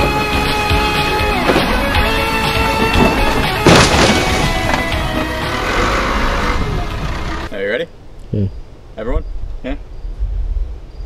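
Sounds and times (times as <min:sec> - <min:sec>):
background music with held notes: 0:00.0 - 0:07.5
car crashing onto ground: 0:01.4 - 0:05.4.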